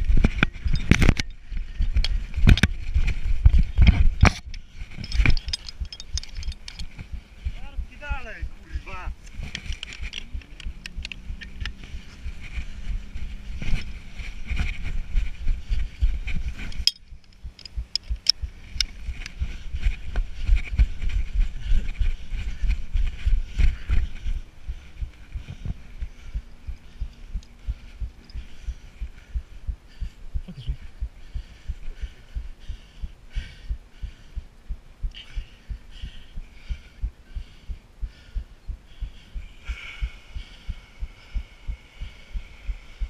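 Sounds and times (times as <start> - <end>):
action camera jostling thumps: 0.0 - 7.8, 9.2 - 24.3
scattered clicks: 0.0 - 12.6, 16.2 - 20.8
faint steady hum: 0.0 - 43.0.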